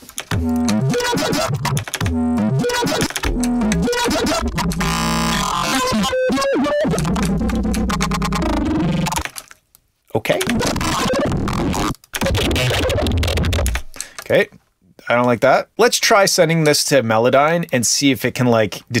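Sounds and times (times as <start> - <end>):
synth bass with gliding pitch: 0.3 - 9.2.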